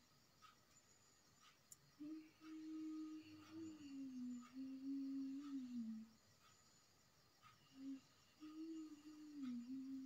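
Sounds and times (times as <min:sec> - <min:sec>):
woman humming: 0:02.0 - 0:06.2, 0:07.7 - 0:10.0.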